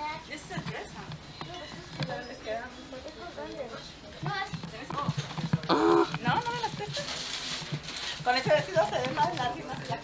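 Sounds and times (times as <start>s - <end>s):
indistinct voices in a room: 0.0s - 10.0s
high-pitched exclamation: 5.7s - 6.1s
wrapping paper rustling: 6.3s - 10.0s.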